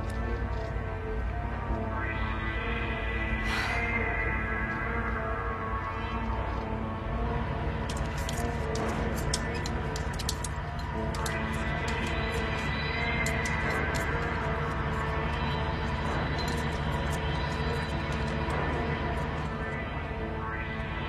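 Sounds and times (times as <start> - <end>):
low drone: 0.0 - 21.0
suspenseful orchestral chords: 0.0 - 21.0.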